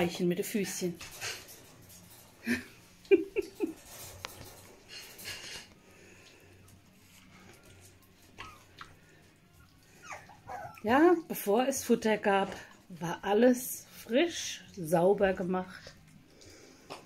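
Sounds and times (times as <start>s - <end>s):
puppies lapping and smacking: 4.4s - 17.0s.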